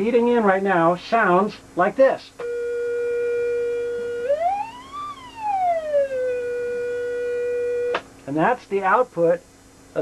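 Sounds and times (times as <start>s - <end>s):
sine-wave tone sweeping: 2.4s - 8.0s.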